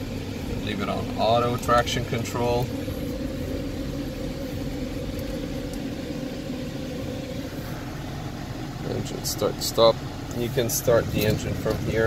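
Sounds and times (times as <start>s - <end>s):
car engine idling from inside: 0.0s - 12.0s.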